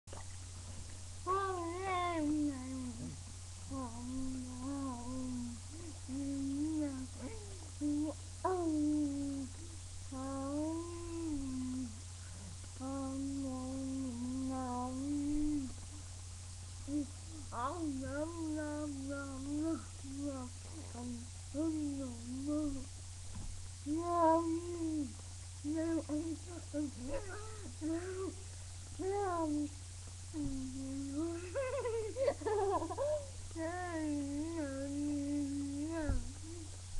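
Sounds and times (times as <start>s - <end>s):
girl humming: 1.2s - 12.0s, 12.8s - 15.8s, 16.8s - 22.9s, 23.8s - 28.4s, 29.0s - 36.8s.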